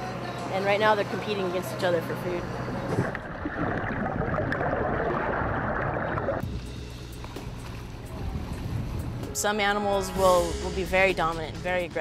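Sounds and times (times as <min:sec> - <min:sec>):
water churning and splashing: 0:02.9 - 0:06.5
background music: 0:06.4 - 0:12.0.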